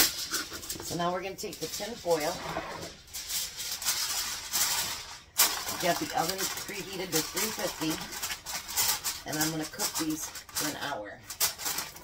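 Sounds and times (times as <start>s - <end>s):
aluminium foil crinkling: 0.0s - 12.0s.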